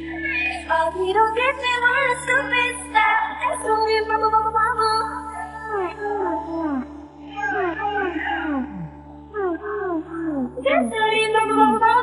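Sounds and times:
woman singing sliding notes: 0:09.4 - 0:12.0.

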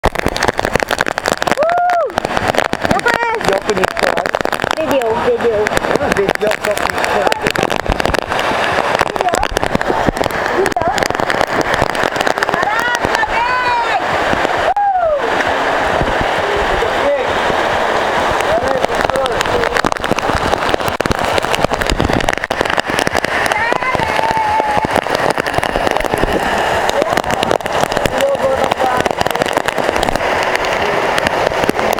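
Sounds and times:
heavy rain on microphone: 0:00.0 - 0:31.9.

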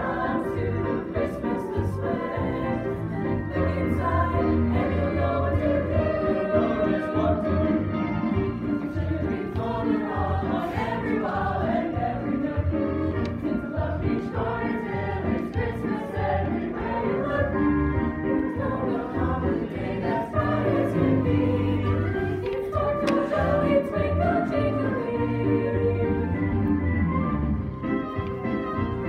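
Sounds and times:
choir singing in harmony: 0:00.0 - 0:27.8.

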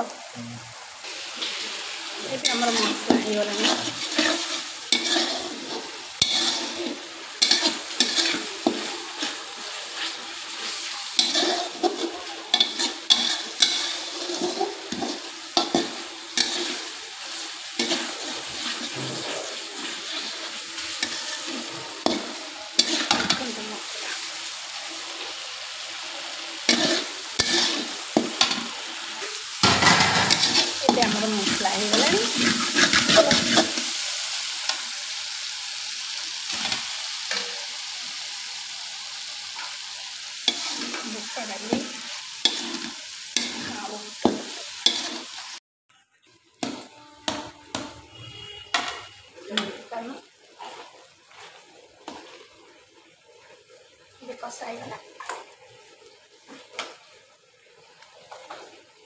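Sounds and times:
paste sizzling in a pan: 0:00.0 - 0:59.0
metal spatula scraping a pan: 0:01.4 - 0:24.2, 0:26.6 - 0:34.8, 0:40.4 - 0:45.6, 0:46.6 - 0:52.5.

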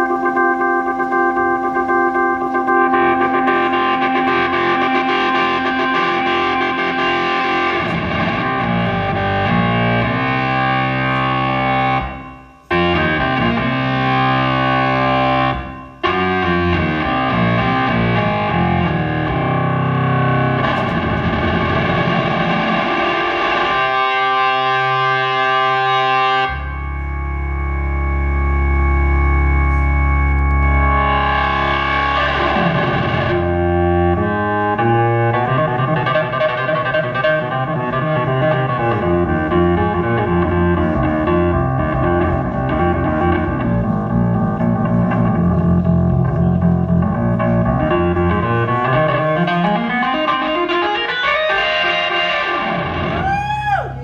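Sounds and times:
overdriven organ playing chords: 0:00.0 - 0:53.9.

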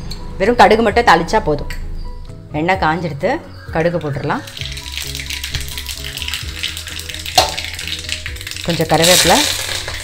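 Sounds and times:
background music: 0:00.0 - 0:10.0
oil and seeds sizzling: 0:03.7 - 0:10.0.

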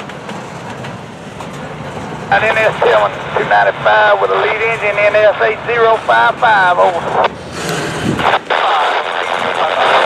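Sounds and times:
radio crackle: 0:02.3 - 0:07.4, 0:08.2 - 0:10.0
radio static hiss: 0:02.3 - 0:07.5, 0:08.1 - 0:10.0.

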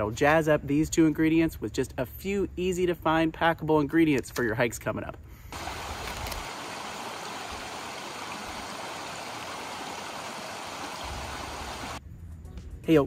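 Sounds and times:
stream rushing: 0:05.6 - 0:12.0.

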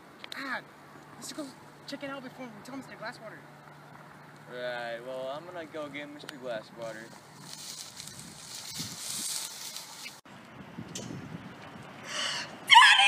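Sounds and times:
faint outdoor hiss: 0:00.0 - 0:12.7.

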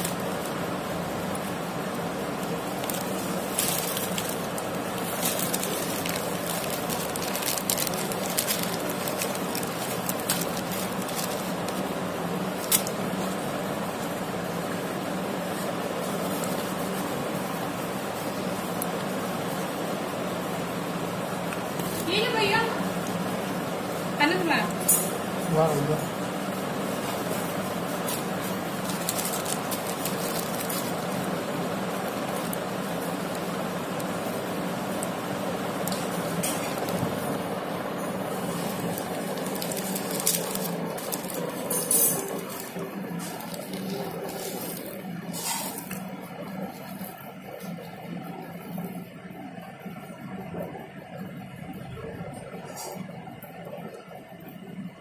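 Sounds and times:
plastic bag of seeds handled: 0:00.0 - 0:19.6, 0:26.7 - 0:47.8
steady background hum: 0:00.0 - 0:55.0.

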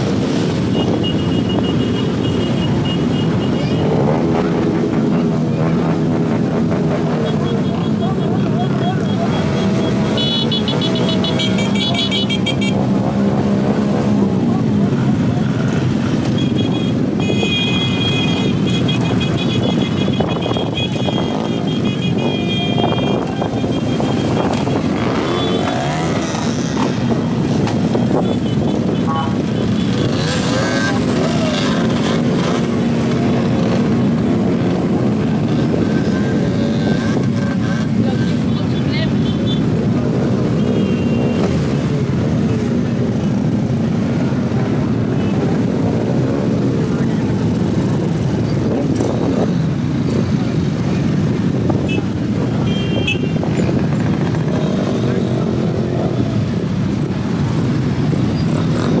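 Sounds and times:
motorcycle engines revving: 0:00.0 - 0:59.0.

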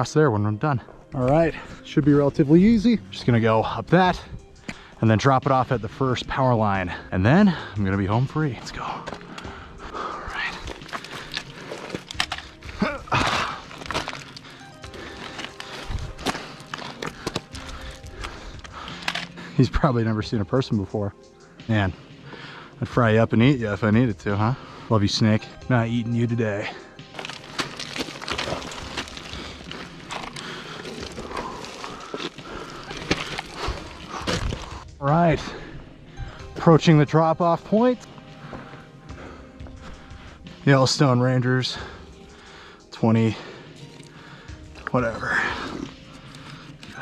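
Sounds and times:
background music: 0:00.0 - 0:47.0
stones scraping: 0:10.2 - 0:19.4, 0:26.5 - 0:35.4, 0:43.8 - 0:47.0
footsteps on loose scree: 0:10.3 - 0:19.4, 0:27.1 - 0:34.9.

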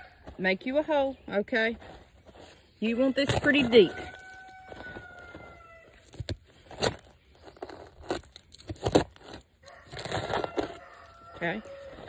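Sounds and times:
trowel scraping soil: 0:01.8 - 0:12.0
rooster crowing: 0:03.6 - 0:06.0, 0:09.6 - 0:12.0.

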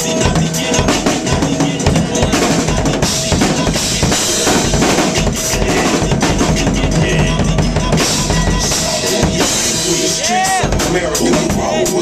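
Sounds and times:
acoustic drum kit groove: 0:00.0 - 0:12.0
hip-hop backing track: 0:00.0 - 0:12.0.

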